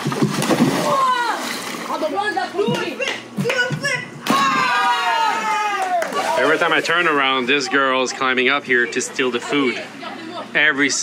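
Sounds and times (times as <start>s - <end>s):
water splashing in a pool: 0.0s - 2.3s, 4.4s - 7.2s
young voices shouting: 0.8s - 1.5s, 3.6s - 6.7s.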